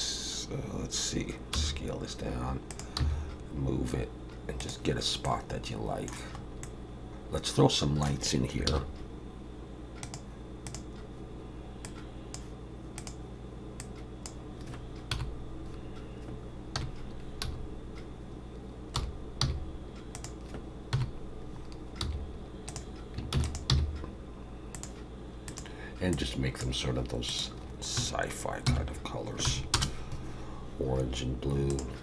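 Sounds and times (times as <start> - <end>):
steady low hum: 0.0 - 32.0
mouse clicks: 10.0 - 10.9
keyboard keystrokes: 22.0 - 24.0.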